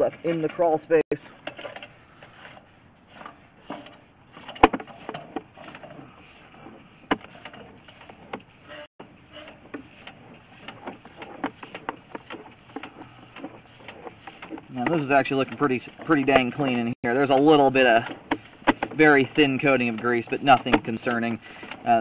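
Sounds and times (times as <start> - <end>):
cable clicking and knocking in pipe: 9.4 - 22.0.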